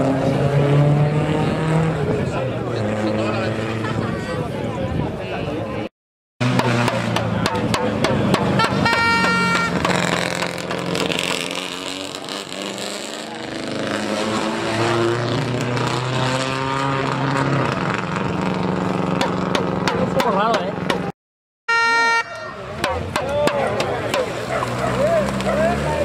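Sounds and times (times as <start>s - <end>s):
rally car engine revving: 0.0s - 4.3s, 6.4s - 21.1s, 23.0s - 26.0s.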